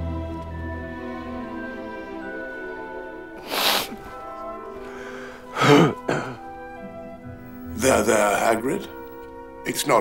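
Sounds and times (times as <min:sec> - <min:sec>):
soft orchestral music: 0:00.0 - 0:10.0
man sobbing: 0:05.5 - 0:06.5.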